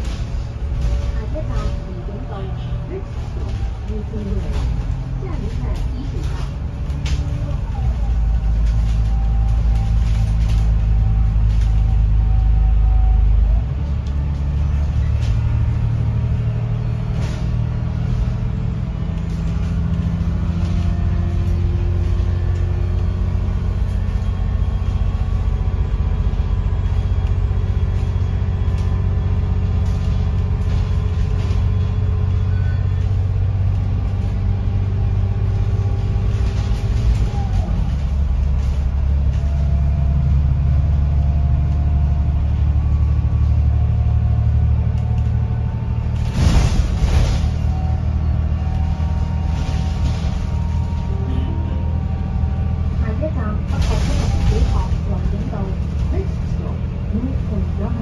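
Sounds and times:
bus engine drone: 0.0s - 58.0s.

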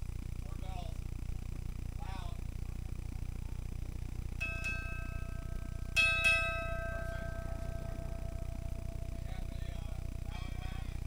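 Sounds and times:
steady low rumble: 0.0s - 11.0s
ship's bell ringing: 4.4s - 11.0s.

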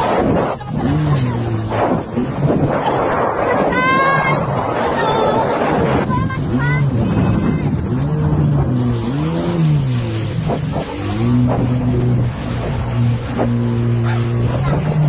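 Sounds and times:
jet ski engine revving: 0.0s - 15.0s
rushing wind: 0.0s - 15.0s
water rushing: 0.0s - 15.0s.

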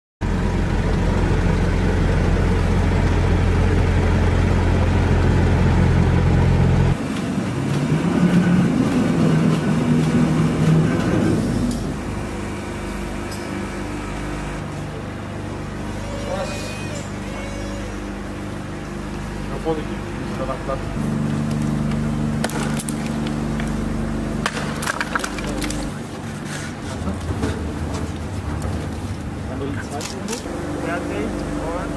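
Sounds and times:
diesel lorry engine rumbling: 0.2s - 16.1s, 17.1s - 31.9s
steady machine hum: 0.2s - 31.9s
pallet truck rolling and clattering: 24.5s - 30.4s.

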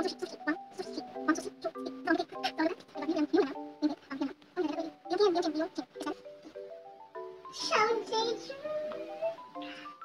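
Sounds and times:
background music with climbing notes: 0.0s - 10.0s.

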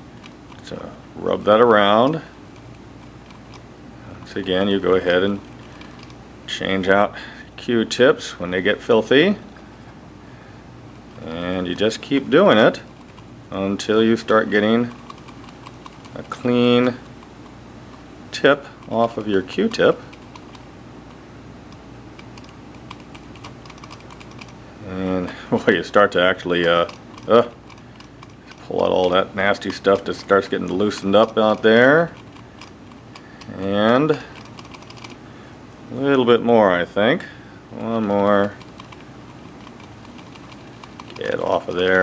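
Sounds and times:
steady low hum: 0.0s - 42.0s.

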